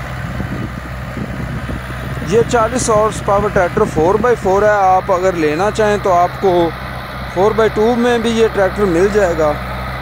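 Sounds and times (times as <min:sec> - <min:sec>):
tractor diesel engine under load: 0:00.0 - 0:10.0.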